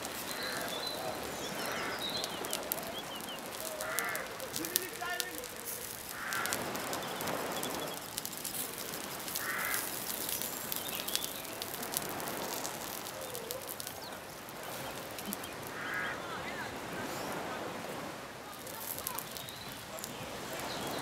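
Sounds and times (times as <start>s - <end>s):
fish frying with hiss and pops: 0.0s - 21.0s
wood fire crackling: 0.0s - 21.0s
bird harsh calls: 0.2s - 4.6s, 6.0s - 8.1s, 9.4s - 11.6s, 13.0s - 16.5s.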